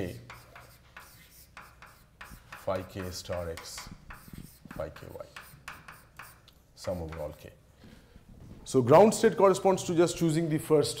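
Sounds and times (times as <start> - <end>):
chalk scratching on blackboard: 0.0 - 7.4.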